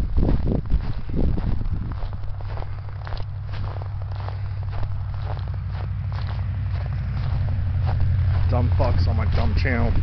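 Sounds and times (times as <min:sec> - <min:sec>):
footsteps crunching through snow: 0:00.0 - 0:10.0
steady low rumble: 0:00.0 - 0:10.0.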